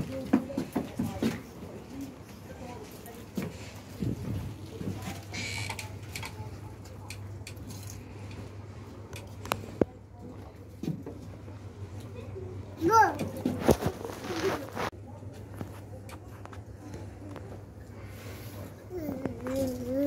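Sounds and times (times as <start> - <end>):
faint scattered voices: 0.0 - 20.0.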